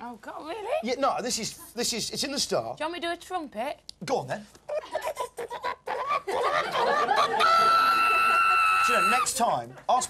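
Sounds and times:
woman giggling: 4.7s - 6.7s.

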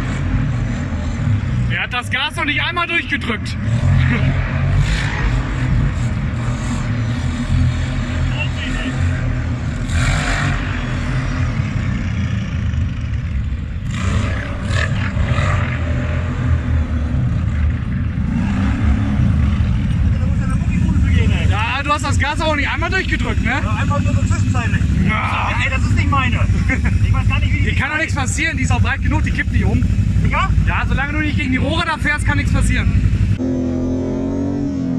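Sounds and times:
quad engines rumbling: 0.0s - 34.9s.

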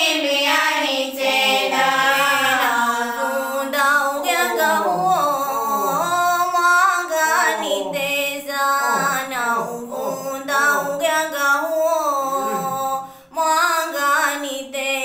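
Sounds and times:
young woman singing: 1.1s - 15.0s.

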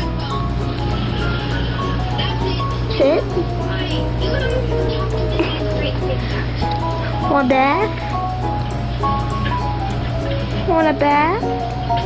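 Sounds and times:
light jingly music: 0.0s - 12.0s.

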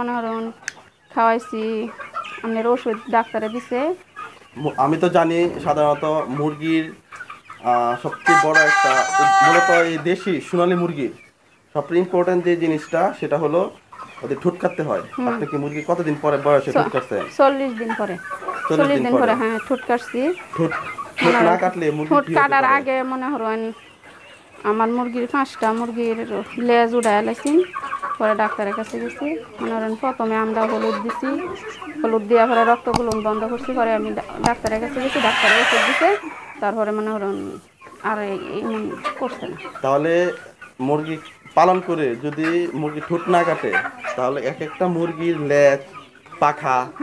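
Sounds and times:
chickens clucking: 0.0s - 47.0s
long drawn-out chicken call: 8.2s - 10.0s, 33.2s - 36.7s.

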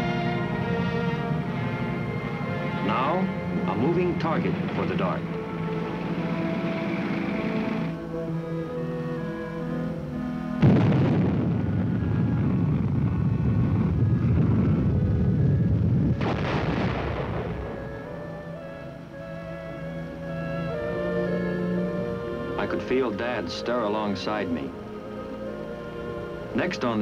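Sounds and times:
film score music: 0.0s - 27.0s
loud explosion: 10.6s - 18.2s
heavy rumble: 10.6s - 18.4s.

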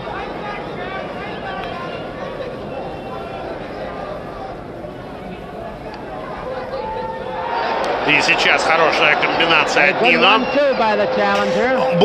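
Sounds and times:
arena crowd chatter: 0.0s - 12.0s.

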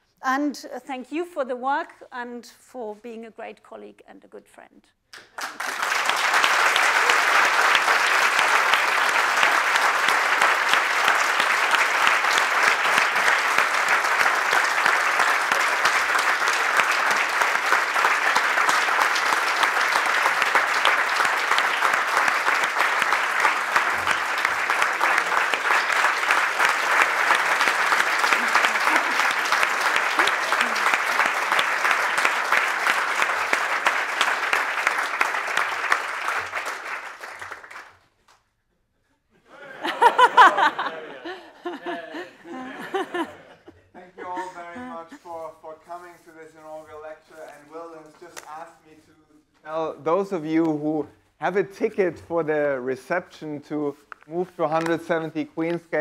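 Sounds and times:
large audience applauding: 5.2s - 38.1s, 39.6s - 43.5s.

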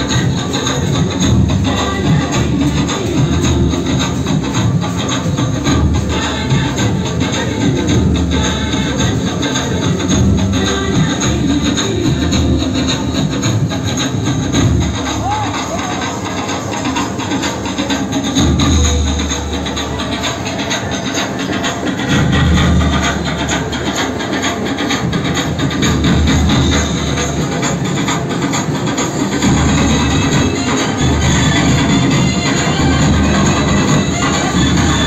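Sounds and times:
loud music with fast percussion: 0.0s - 35.0s.

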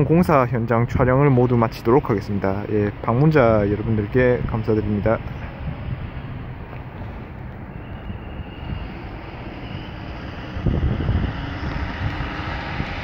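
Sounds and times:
vehicle road and engine rumble: 0.0s - 13.0s.

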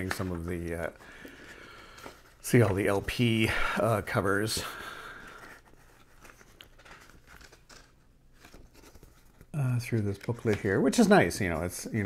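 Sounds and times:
glossy paper pages rustling: 0.0s - 12.0s.

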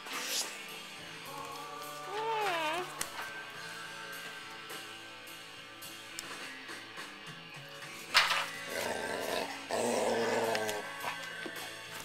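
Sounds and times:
background music: 0.0s - 12.0s
dog growling: 8.6s - 11.8s.

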